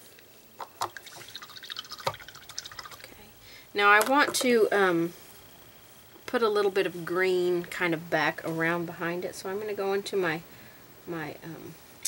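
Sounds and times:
paintbrush rinsing in water: 0.9 - 3.2.

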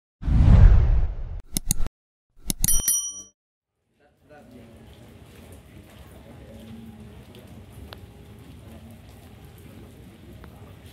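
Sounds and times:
bell-like ding: 2.6 - 3.4.

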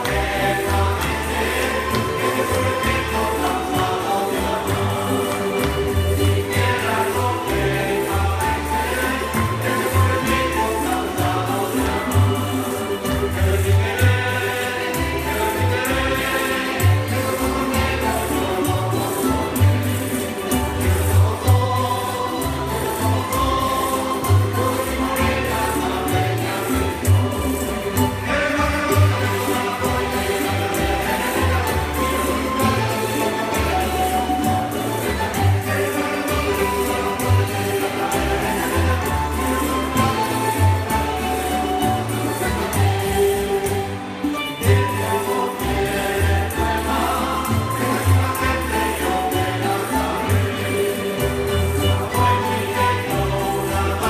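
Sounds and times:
accordion: 0.0 - 54.0
drum and hand percussion: 0.0 - 54.0
group singing: 0.0 - 54.0
guitars: 0.0 - 54.0.

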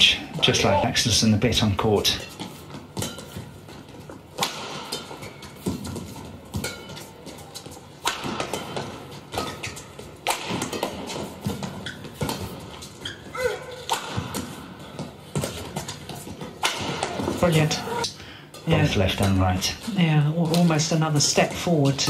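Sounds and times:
rackets striking shuttlecock: 4.4 - 12.6, 13.7 - 14.5
shoes squeaking on court: 8.6 - 10.2, 11.0 - 18.0.

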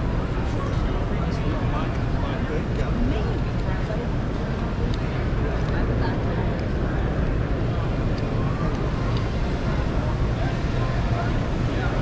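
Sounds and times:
distant indistinct voices: 0.0 - 12.0
steady low rumble: 0.0 - 12.0.

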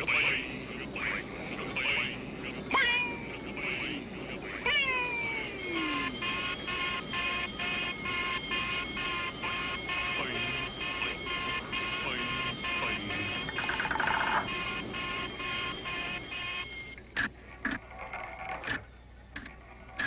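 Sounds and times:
pulsing high electronic chord: 5.6 - 17.0.

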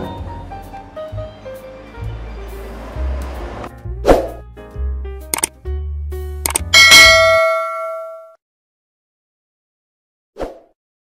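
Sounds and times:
notification bell ding: 6.5 - 8.4.

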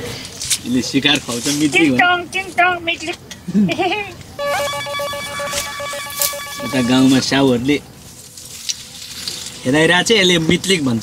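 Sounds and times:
phone ringtone trilling: 4.4 - 7.2.

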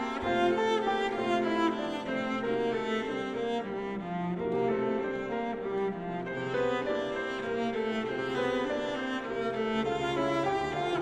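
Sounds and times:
cello bowing sustained notes: 0.0 - 11.0
grand piano chords: 0.0 - 11.0.

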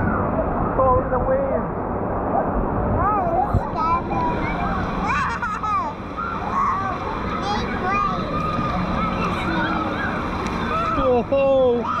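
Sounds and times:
water sloshing and splashing: 0.0 - 12.0
children calling: 3.0 - 12.0.

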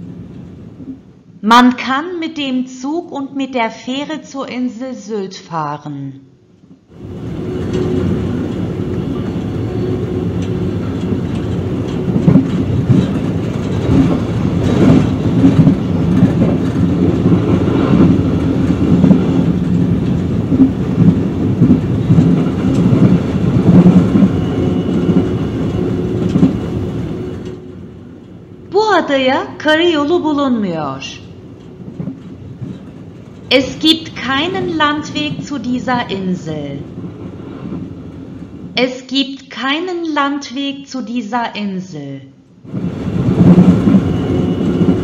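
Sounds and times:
train rumbling on rails: 0.0 - 1.4, 6.9 - 38.8, 42.6 - 45.0
clatter of wheels knocking: 10.4 - 25.3, 31.6 - 33.5.

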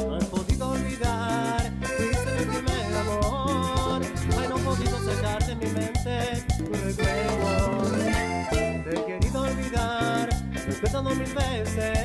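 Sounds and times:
bass: 0.0 - 12.0
steady drum beat: 0.0 - 12.0
accordion melody: 0.7 - 12.0.

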